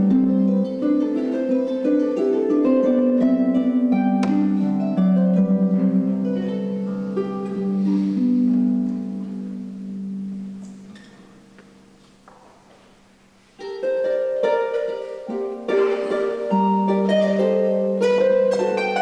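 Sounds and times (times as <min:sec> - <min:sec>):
harp plucked notes: 0:00.0 - 0:12.2, 0:13.5 - 0:19.0.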